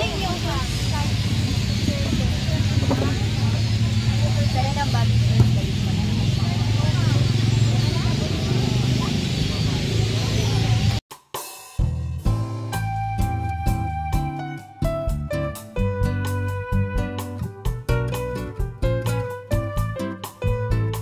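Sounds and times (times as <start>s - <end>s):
shoppers chattering: 0.0s - 11.0s.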